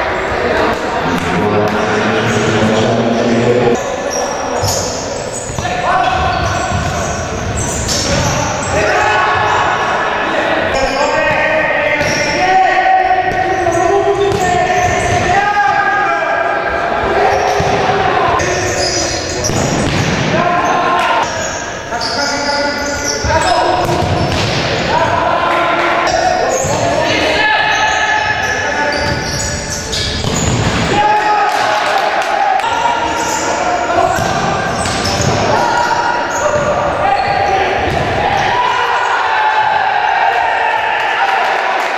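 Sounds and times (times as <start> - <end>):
people shouting: 8.0 - 18.4, 30.8 - 41.9.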